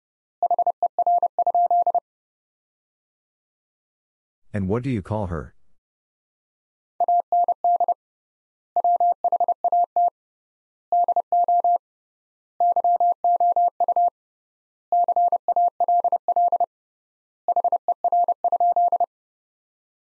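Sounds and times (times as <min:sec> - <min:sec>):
person speaking: 0:04.6 - 0:05.7.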